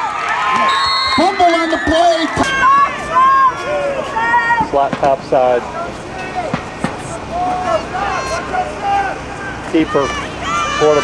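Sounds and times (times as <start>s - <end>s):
spectators calling out: 0.0s - 11.0s.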